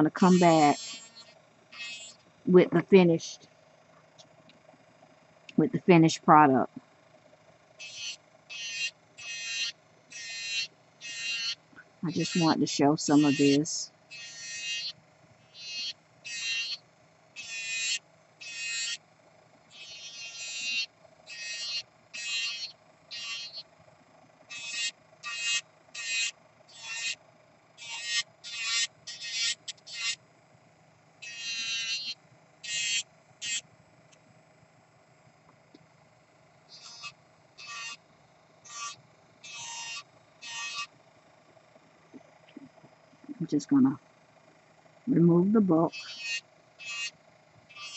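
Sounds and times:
nail drill grinding rasps: 0:00.0 - 0:02.3, 0:07.8 - 0:19.0, 0:19.7 - 0:23.6, 0:24.4 - 0:27.2, 0:27.8 - 0:30.2, 0:31.2 - 0:33.6, 0:36.7 - 0:38.0, 0:38.6 - 0:40.9, 0:45.9 - 0:47.9
faint steady whine: 0:00.0 - 0:47.9.

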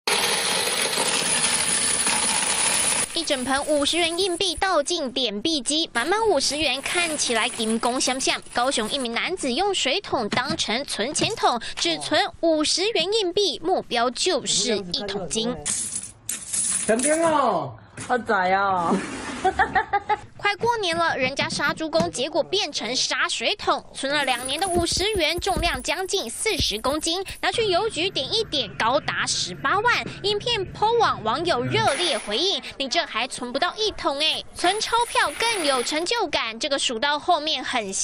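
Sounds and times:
coins clinking into a machine: 0:00.1 - 0:04.3, 0:06.8 - 0:09.0, 0:15.6 - 0:17.2, 0:34.6 - 0:36.1
man calling out: 0:31.6 - 0:31.9.

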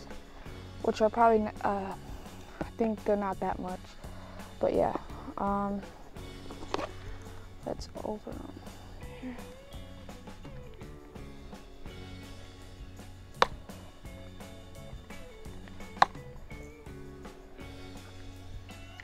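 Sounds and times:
background music with held notes: 0:00.0 - 0:19.0.

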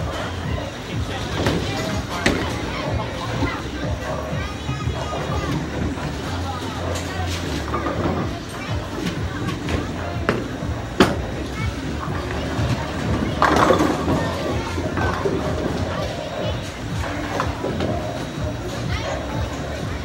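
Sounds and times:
chatter: 0:00.0 - 0:20.0.

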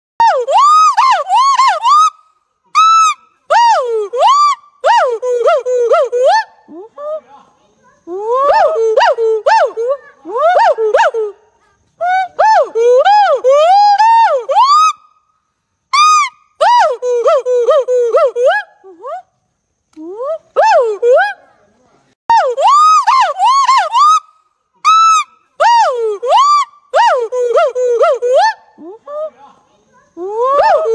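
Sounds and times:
gibbon whooping hoots: 0:22.3 - 0:24.2, 0:30.2 - 0:30.9.

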